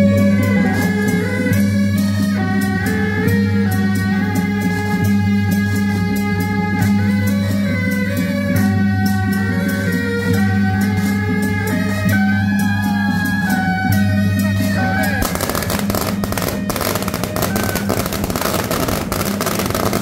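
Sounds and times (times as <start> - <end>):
reed melody: 0.0 - 20.0.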